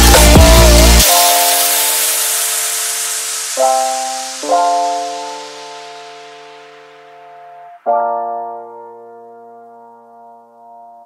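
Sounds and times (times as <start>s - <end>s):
white-noise wash: 0.0s - 7.8s.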